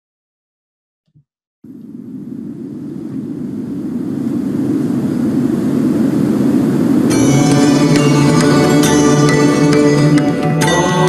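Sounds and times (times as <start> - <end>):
low rumbling swell: 1.7 - 9.4.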